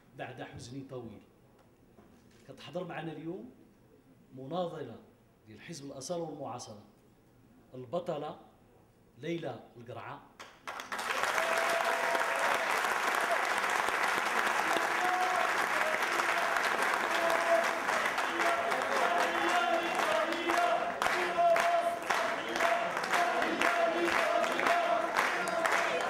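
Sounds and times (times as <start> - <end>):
audience applauding: 10.4 - 26.0
crowd voices: 14.6 - 26.0.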